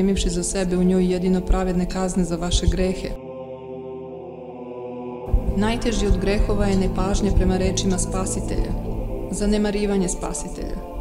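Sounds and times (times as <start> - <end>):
slow chant-like music: 0.0 - 11.0.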